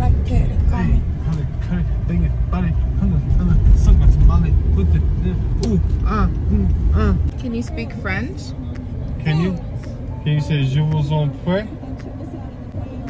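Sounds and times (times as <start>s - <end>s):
car road and engine rumble: 0.0s - 13.0s.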